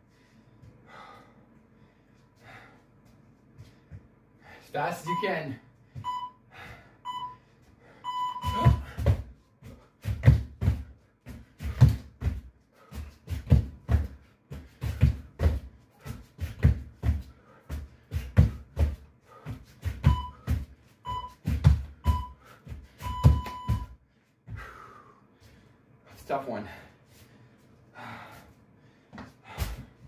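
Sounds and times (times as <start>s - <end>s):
interval timer beeps: 5.0s - 6.4s, 7.0s - 7.4s, 8.0s - 8.9s, 20.0s - 20.5s, 21.1s - 21.4s, 22.0s - 22.4s, 23.0s - 23.9s
hands and feet thudding on floor: 8.4s - 24.6s.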